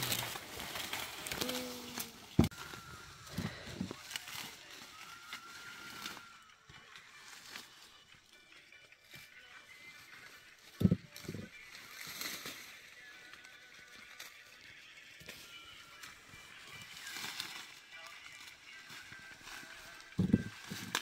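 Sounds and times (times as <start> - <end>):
dry corn stalks rustling: 0.0 - 8.0, 9.0 - 21.0.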